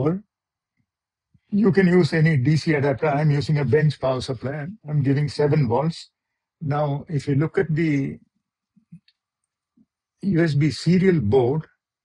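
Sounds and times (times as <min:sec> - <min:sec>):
man speaking: 0:00.0 - 0:00.2, 0:01.5 - 0:08.2, 0:10.2 - 0:11.7.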